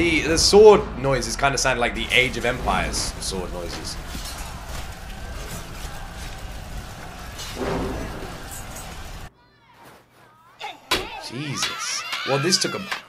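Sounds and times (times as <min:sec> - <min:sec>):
noisy fighting din: 0:00.0 - 0:09.3
faint voices: 0:00.0 - 0:13.0
sharp hit: 0:07.5 - 0:09.3.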